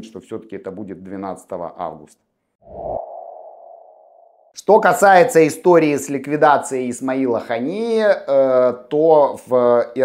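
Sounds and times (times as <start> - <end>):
sonar-like mid-pitched tone: 2.7 - 4.5.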